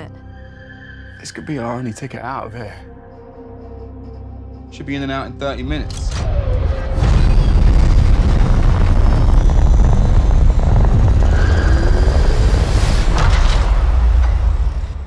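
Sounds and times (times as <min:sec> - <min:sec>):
spacecraft engines rumbling: 0:06.9 - 0:15.0.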